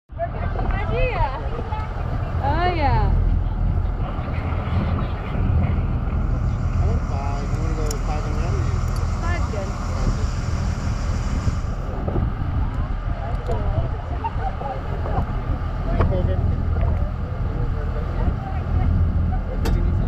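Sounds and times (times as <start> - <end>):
boat engine rumbling: 0.1 - 20.0
wind on microphone: 0.1 - 20.0.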